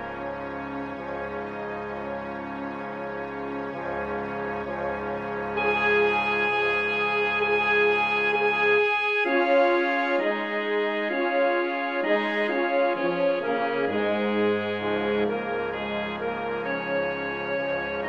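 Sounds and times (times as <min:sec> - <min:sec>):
wind band music: 0:00.0 - 0:18.0.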